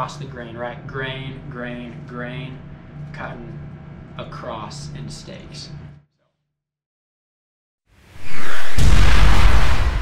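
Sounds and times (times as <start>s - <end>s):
noisy whoosh: 8.1s - 10.0s
deep rumbling boom: 8.6s - 10.0s.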